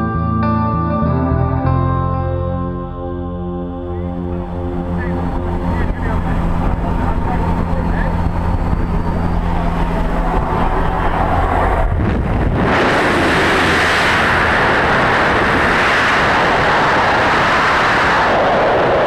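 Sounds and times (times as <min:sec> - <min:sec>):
propeller aircraft engines droning: 0:01.6 - 0:19.0
rush of wind: 0:04.2 - 0:19.0.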